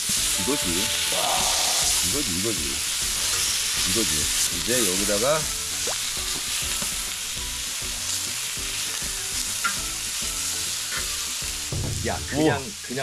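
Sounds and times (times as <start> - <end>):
pork sizzling on a griddle: 0.0 - 13.0.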